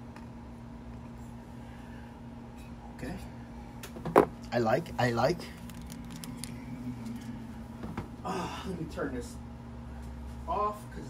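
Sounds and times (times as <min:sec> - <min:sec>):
low electrical hum: 0:00.0 - 0:11.0
trading cards rustling and clicking: 0:05.4 - 0:06.6.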